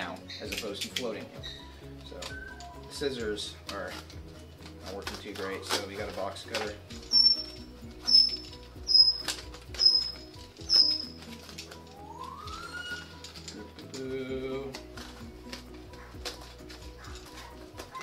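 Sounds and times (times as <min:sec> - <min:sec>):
blade squeaking through foam: 0:07.1 - 0:11.2.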